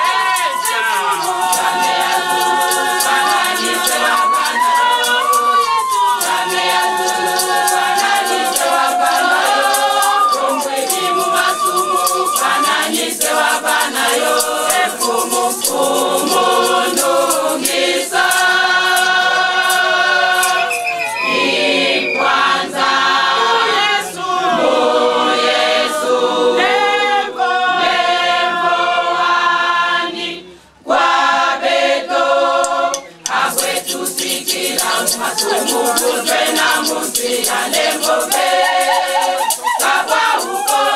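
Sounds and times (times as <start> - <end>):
hand claps: 0.0 - 21.3, 32.6 - 40.9
tambourine: 0.0 - 21.4, 33.0 - 40.9
women's choir singing gospel: 0.0 - 40.9.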